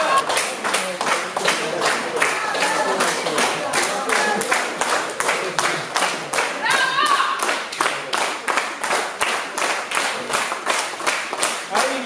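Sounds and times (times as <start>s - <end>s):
audience clapping in unison: 0.0s - 12.0s.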